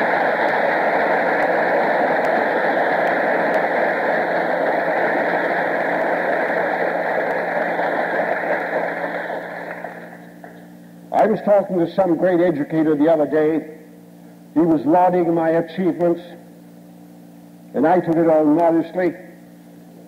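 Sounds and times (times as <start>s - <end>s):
audience applause: 0.0s - 10.6s.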